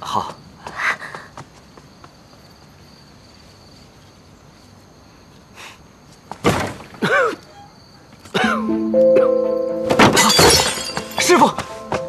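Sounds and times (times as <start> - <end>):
insects chirping trill: 0.0 - 12.0.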